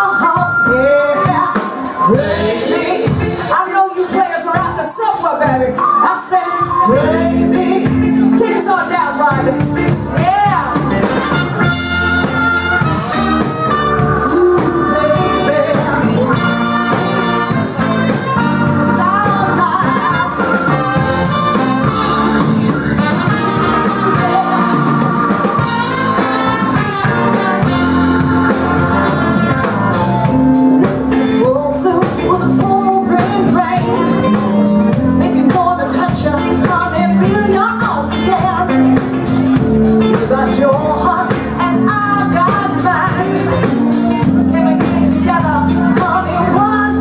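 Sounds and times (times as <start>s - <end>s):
drums: 0.0s - 47.0s
live blues band playing: 0.0s - 47.0s.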